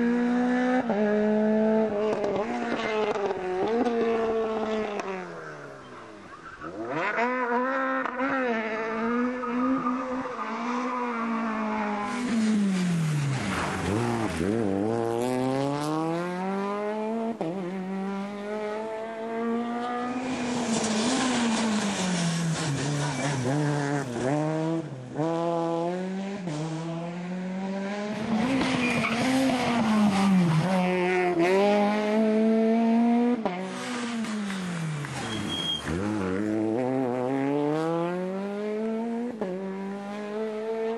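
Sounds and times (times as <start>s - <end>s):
rally car engine revving: 0.0s - 5.6s, 6.4s - 40.9s.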